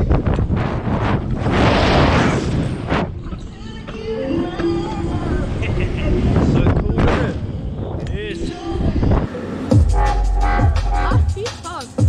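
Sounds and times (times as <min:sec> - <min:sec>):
loud rush of air: 0:00.0 - 0:03.2
wind buffeting microphone: 0:00.0 - 0:03.8, 0:05.1 - 0:09.3
heavy low rumble: 0:00.0 - 0:03.9, 0:05.0 - 0:12.0.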